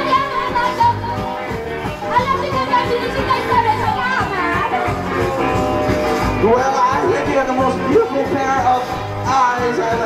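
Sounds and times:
live rock band playing: 0.0s - 10.0s
steady bass line: 0.0s - 10.0s.

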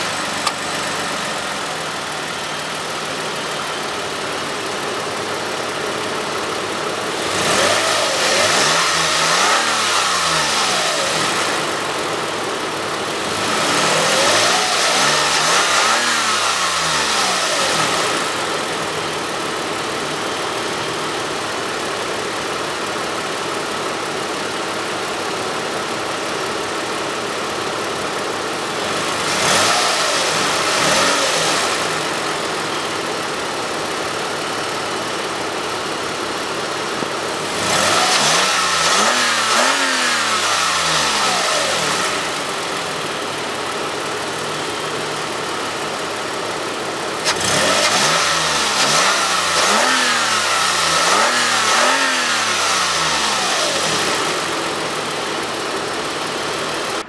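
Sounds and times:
car engine idling and revving: 0.0s - 57.0s.

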